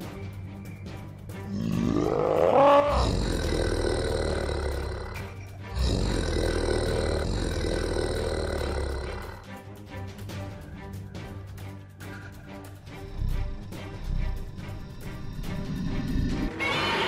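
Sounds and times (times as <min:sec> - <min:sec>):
background music: 0:00.0 - 0:17.0
giant monster roars: 0:01.5 - 0:09.5, 0:12.9 - 0:17.0.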